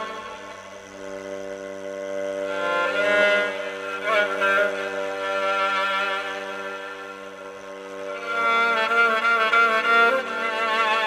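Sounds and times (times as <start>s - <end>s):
bowed fiddle long note: 0.0s - 11.0s.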